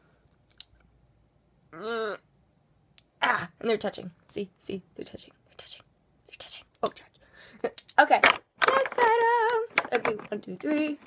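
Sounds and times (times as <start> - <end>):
girl whispering: 5.2 - 7.2.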